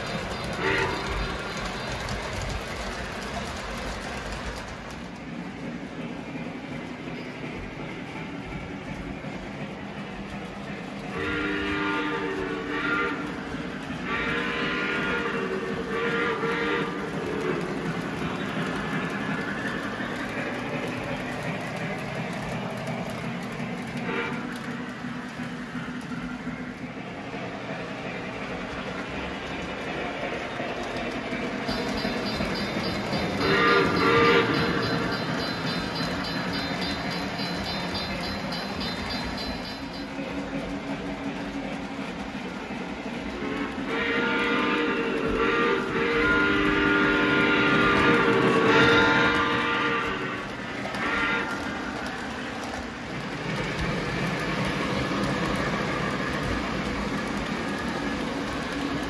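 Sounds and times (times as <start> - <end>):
model train rolling rumble: 0.0 - 59.0
train chord horn: 0.4 - 1.2, 11.1 - 13.4, 14.0 - 17.6, 24.0 - 24.5, 31.7 - 35.5, 43.4 - 51.7.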